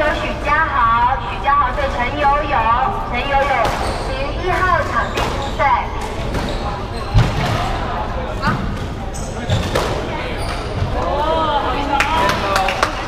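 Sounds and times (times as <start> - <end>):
shoes squeaking on floor: 3.4 - 7.5, 8.4 - 11.0.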